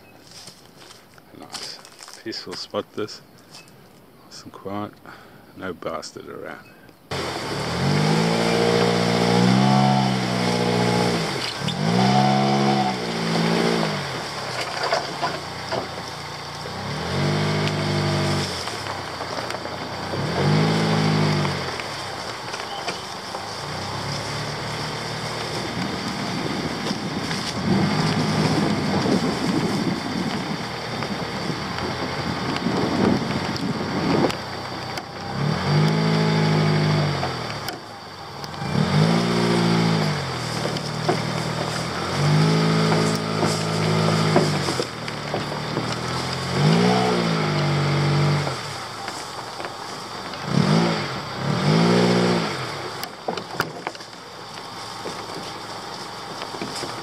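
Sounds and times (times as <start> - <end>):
car rattling and knocking: 7.1 - 35.2, 39.6 - 50.4, 52.9 - 54.3
car engine revving: 7.1 - 57.0.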